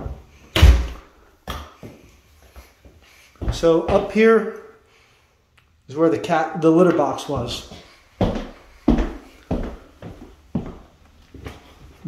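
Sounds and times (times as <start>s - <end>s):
heavy footsteps on floor: 1.8s - 4.3s, 7.2s - 12.0s.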